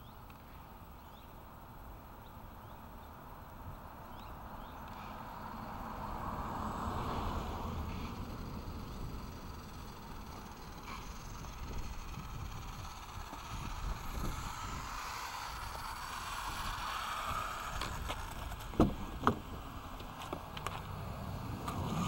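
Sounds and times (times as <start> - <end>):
radio-controlled car motor whirring: 4.2 - 22.0.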